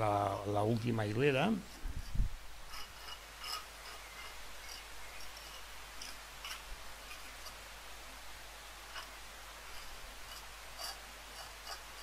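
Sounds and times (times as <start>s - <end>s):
trowel scraping mortar: 8.9s - 12.0s.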